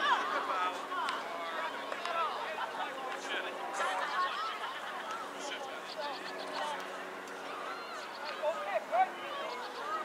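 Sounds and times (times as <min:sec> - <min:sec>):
distant voices calling and chattering: 0:00.0 - 0:10.0.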